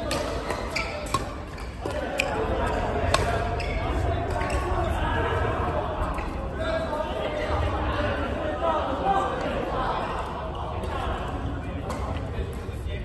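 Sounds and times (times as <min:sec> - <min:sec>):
rackets hitting shuttlecock: 0:00.0 - 0:02.3, 0:03.1 - 0:03.4
sports hall din and voices: 0:00.0 - 0:13.0.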